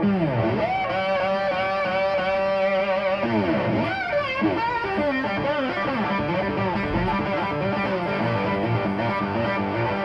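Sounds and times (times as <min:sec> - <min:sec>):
distorted electric guitar bends: 0:00.0 - 0:10.0.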